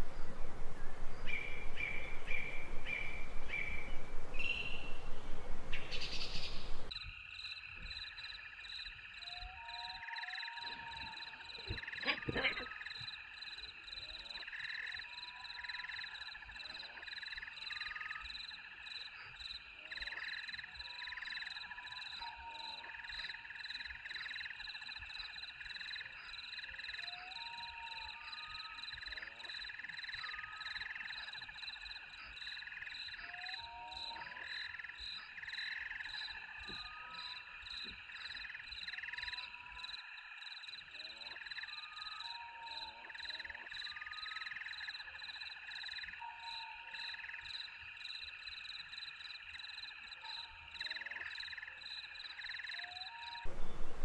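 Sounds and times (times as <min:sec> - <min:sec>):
frogs calling: 0:05.6 - 0:54.0
insects chirring: 0:46.9 - 0:54.0.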